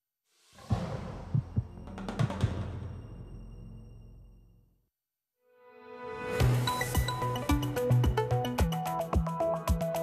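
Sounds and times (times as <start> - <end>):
deep drum thumps: 0.7 - 2.7.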